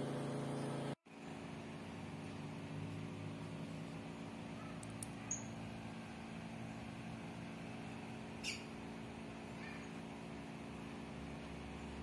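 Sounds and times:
faint background hum: 0:00.0 - 0:12.0.

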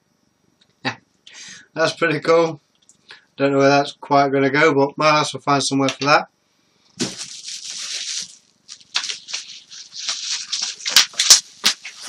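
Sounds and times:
bubble wrap crackles: 0:07.0 - 0:12.0
bubble wrap rustling and crinkling: 0:07.0 - 0:12.0.

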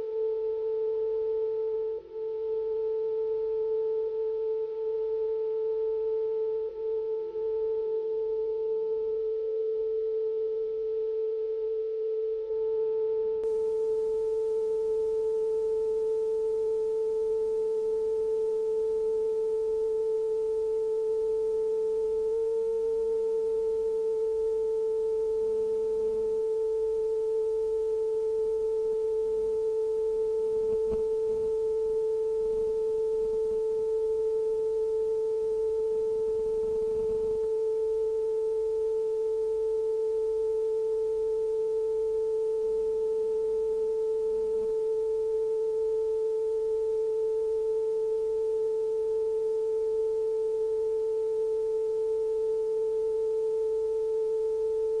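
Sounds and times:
steady mid-pitched tone: 0:28.4 - 0:39.2.

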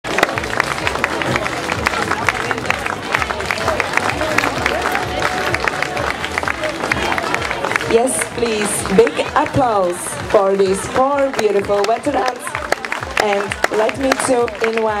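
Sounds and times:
crowd chatter: 0:00.0 - 0:15.0
spectators clapping: 0:00.0 - 0:15.0.

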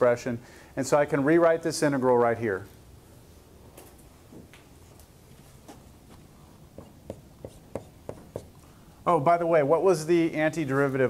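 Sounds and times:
marker writing on a whiteboard: 0:06.8 - 0:08.6.

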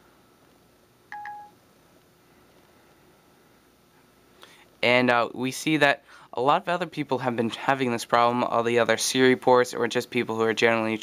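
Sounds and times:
two-note electronic chime: 0:01.2 - 0:01.5.

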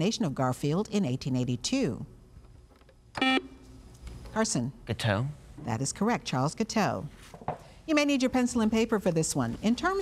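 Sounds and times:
electronic buzzer beep: 0:03.2 - 0:03.6.

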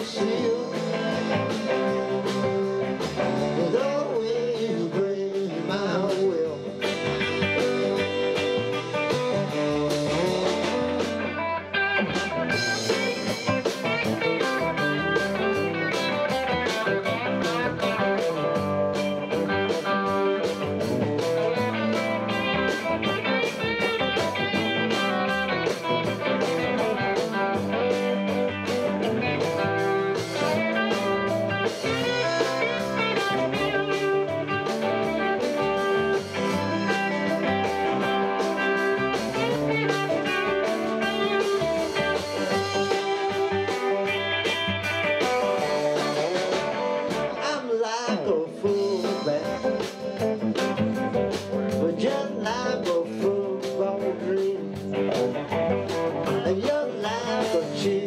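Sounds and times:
drum kit beat: 0:00.0 - 0:58.0
electric guitars: 0:00.0 - 0:58.0.

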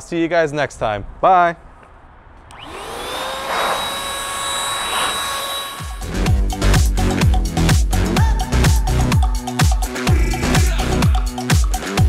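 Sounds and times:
blower motor whining with rushing air: 0:02.5 - 0:06.2.

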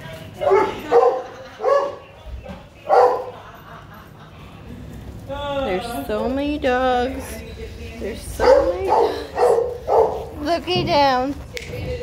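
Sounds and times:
dogs barking: 0:00.4 - 0:02.2, 0:02.8 - 0:03.6, 0:08.3 - 0:10.4.

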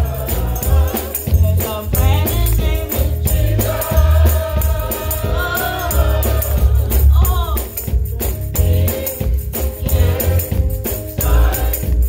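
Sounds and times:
deep bass line: 0:00.0 - 0:12.0
drums steady beat: 0:00.0 - 0:12.0
gospel choir singing: 0:00.0 - 0:12.0.

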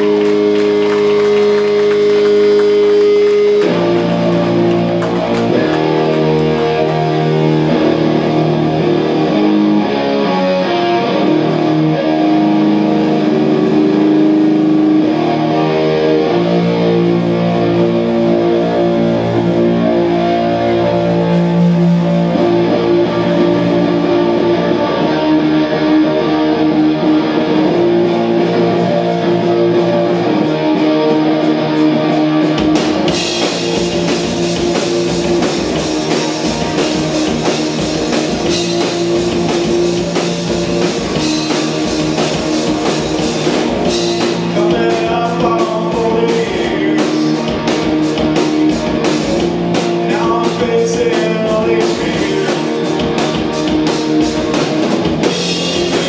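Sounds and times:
loud electric guitar chords: 0:00.0 - 0:56.0.

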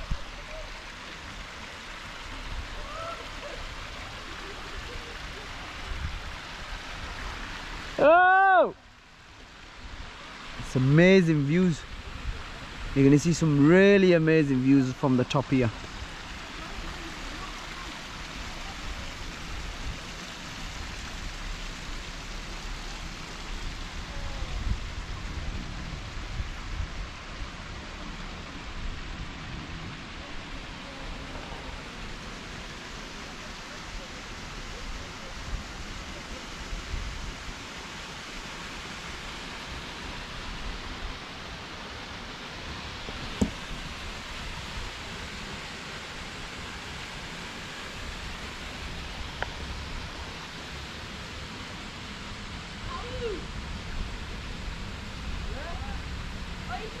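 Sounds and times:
stream running water: 0:00.0 - 0:57.0.

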